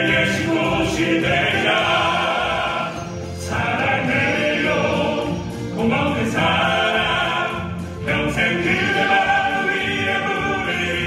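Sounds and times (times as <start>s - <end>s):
male vocal ensemble singing ballad: 0.0s - 11.0s.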